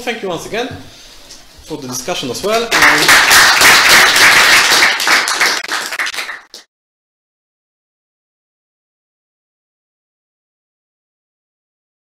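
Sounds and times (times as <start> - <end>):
audience applauding: 2.6 - 6.7.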